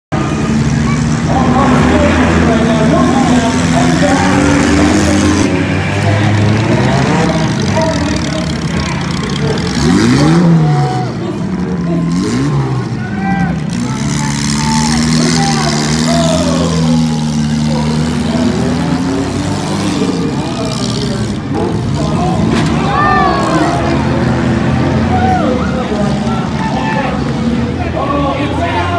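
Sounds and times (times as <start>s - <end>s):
car engines revving: 0.1s - 28.9s.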